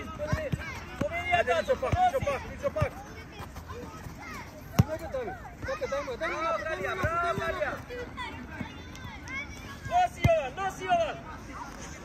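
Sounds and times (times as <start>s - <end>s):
people shouting outdoors: 4.0s - 11.3s.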